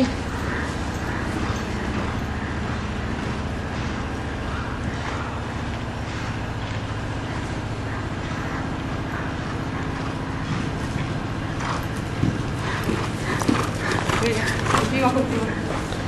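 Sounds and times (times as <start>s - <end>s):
low mechanical drone: 0.0s - 16.0s.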